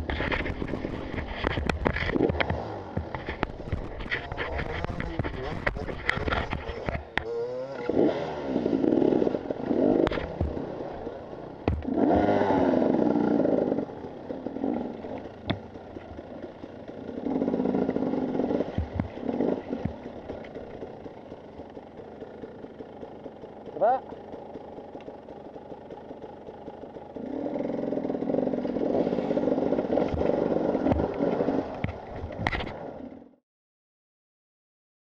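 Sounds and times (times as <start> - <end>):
bike knocking against rocks: 0.0 - 7.2, 10.0 - 10.7, 11.6 - 12.4, 18.6 - 20.6
motorcycle engine revving: 0.0 - 33.4.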